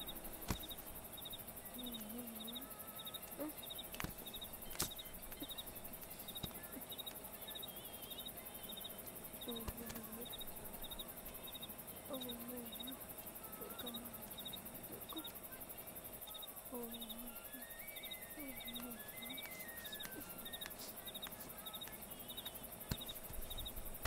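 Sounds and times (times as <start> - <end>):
crickets chirping: 0.0 - 24.0
faint steady hum: 0.0 - 24.0.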